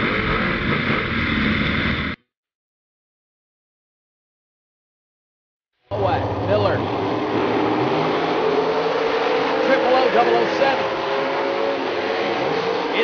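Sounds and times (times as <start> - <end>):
man talking over loudspeaker: 5.9 - 6.8, 9.5 - 10.9
race car engines running: 5.9 - 13.0.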